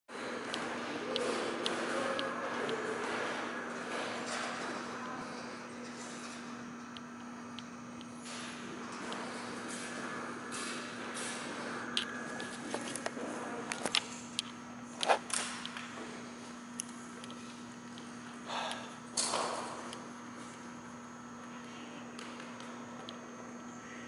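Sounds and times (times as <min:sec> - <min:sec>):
steady low hum: 0:00.1 - 0:24.0.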